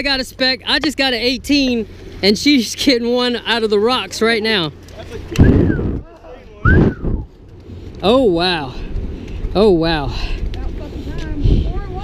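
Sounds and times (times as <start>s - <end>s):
wind buffeting microphone: 5.1s - 12.0s.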